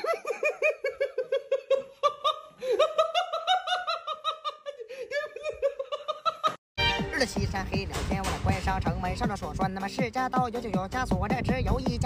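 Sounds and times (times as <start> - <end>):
person laughing hard: 0.0 - 6.6.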